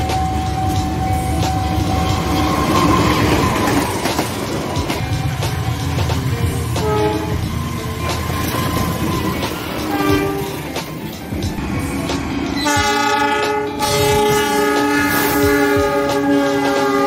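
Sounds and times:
train rumbling on track: 0:00.0 - 0:17.0
locomotive horn blasts: 0:06.8 - 0:07.5, 0:09.9 - 0:10.7, 0:12.6 - 0:17.0.

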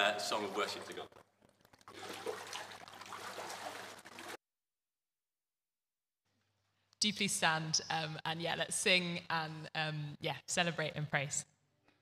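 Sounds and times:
water trickling and splashing: 0:00.0 - 0:04.4.

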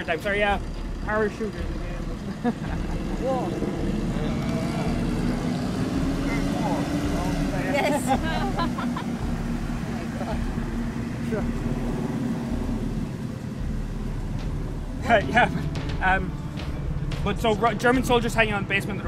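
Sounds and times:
low engine drone: 0:00.0 - 0:19.0
person laughing: 0:02.2 - 0:03.3, 0:07.7 - 0:09.2.

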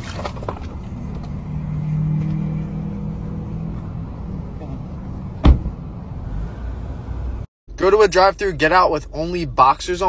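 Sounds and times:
car engine humming: 0:00.5 - 0:07.5.

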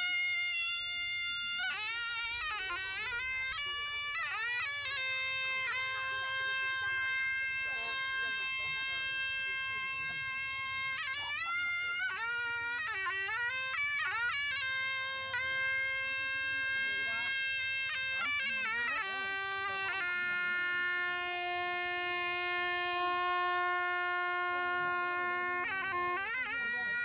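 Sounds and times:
reed shawm playing melody: 0:00.0 - 0:27.0.

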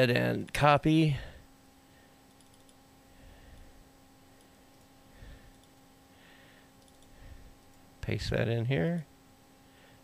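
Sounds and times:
low steady hum: 0:00.0 - 0:10.0
computer mouse clicks: 0:02.2 - 0:02.8, 0:05.5 - 0:05.8, 0:06.8 - 0:07.8.

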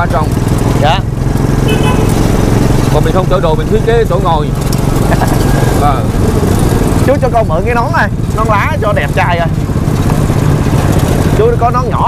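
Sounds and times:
small car engine running: 0:00.0 - 0:12.0
street traffic: 0:00.0 - 0:12.0.

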